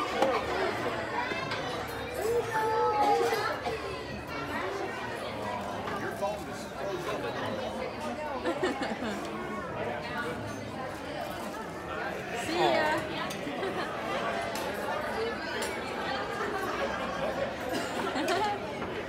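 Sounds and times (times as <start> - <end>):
chatter of diners' voices: 0.0 - 19.0.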